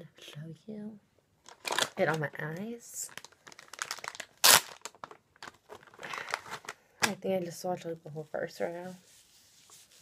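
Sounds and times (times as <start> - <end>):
crinkling and rustling: 1.4 - 7.2.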